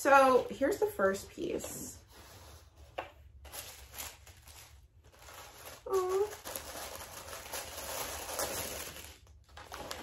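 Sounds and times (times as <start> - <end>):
tissue paper rustling: 1.0 - 10.0.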